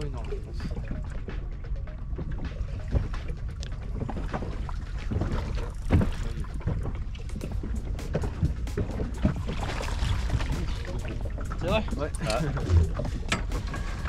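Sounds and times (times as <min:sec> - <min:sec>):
water lapping against boat: 0:00.0 - 0:14.0
knocks on hull: 0:05.2 - 0:07.0.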